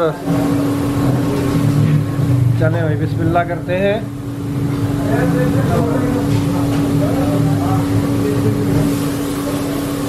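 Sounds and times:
motor running steadily: 0:00.0 - 0:10.0.

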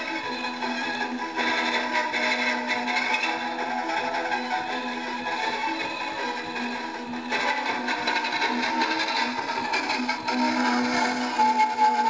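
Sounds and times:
gramophone music: 0:00.0 - 0:12.0.

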